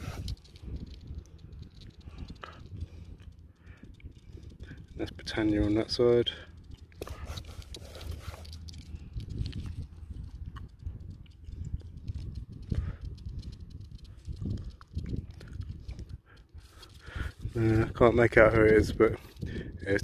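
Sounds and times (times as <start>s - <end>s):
microphone handling noise: 0.0s - 3.1s.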